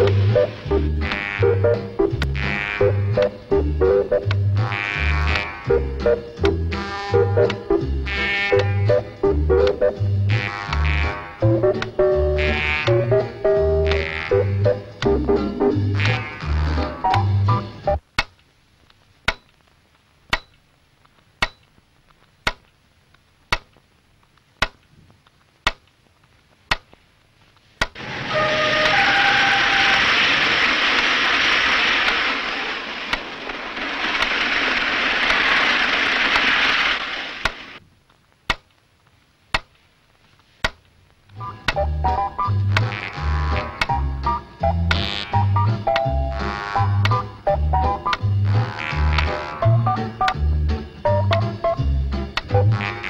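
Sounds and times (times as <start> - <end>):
music: 0.0 - 18.0, 28.0 - 30.0, 41.3 - 53.0
loud steady hissing: 0.0 - 52.6.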